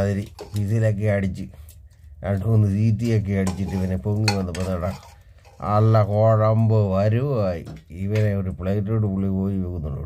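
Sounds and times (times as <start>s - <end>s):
person talking: 0.0s - 1.6s, 2.2s - 10.0s
ladle stirring thick curry: 0.0s - 1.8s, 2.6s - 6.4s
ladle clinking on metal pot: 3.4s - 5.6s.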